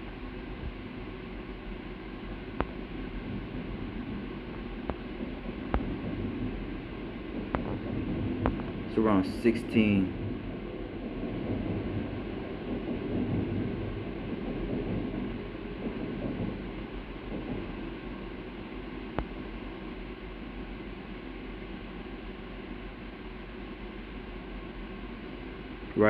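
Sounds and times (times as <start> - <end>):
steady background noise: 0.0 - 26.0.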